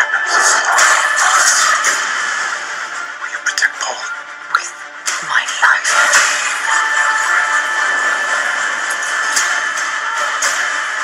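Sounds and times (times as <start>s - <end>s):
film trailer score and effects: 0.0s - 11.0s.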